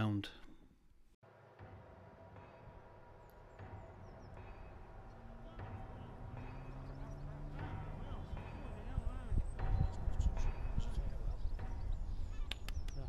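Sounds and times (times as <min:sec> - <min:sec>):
low hum with rising tone: 0:03.6 - 0:09.4
distant murmuring voices: 0:03.8 - 0:13.0.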